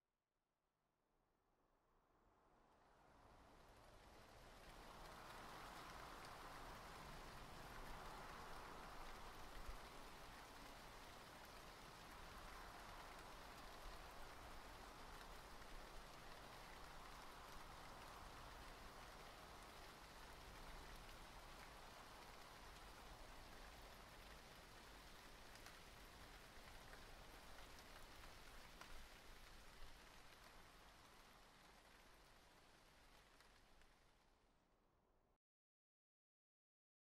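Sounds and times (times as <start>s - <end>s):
steady rain: 2.8s - 34.6s.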